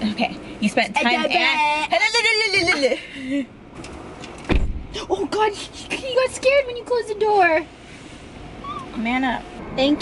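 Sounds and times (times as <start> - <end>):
car door slamming: 4.4 - 4.9.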